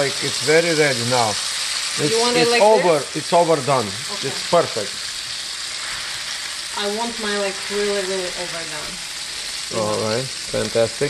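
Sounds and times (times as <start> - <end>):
steak sizzling in a frying pan: 0.0 - 11.0.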